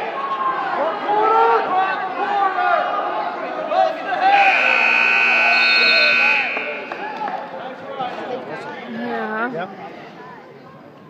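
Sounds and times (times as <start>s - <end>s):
faint crowd voices: 0.0s - 11.0s
scoreboard buzzer: 4.3s - 7.4s.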